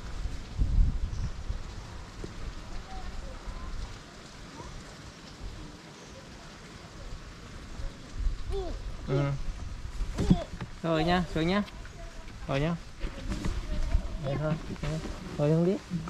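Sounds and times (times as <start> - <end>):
low rumble on microphone: 0.0 - 2.7.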